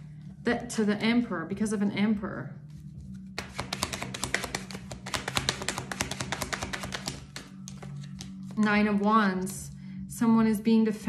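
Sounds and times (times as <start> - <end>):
background music: 0.0 - 11.0
cards being shuffled: 2.7 - 9.1.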